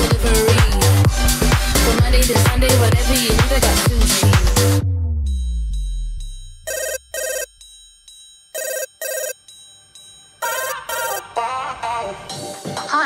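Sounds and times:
dance beat: 0.0 - 4.8
telephone double ring: 6.6 - 11.2.

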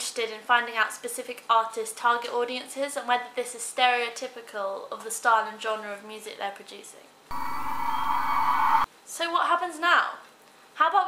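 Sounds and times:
steady held tones: 7.3 - 8.9.

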